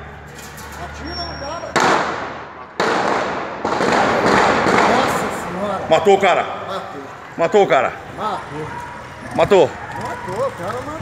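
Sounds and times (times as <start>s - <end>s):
gunshots echoing: 1.7s - 6.6s.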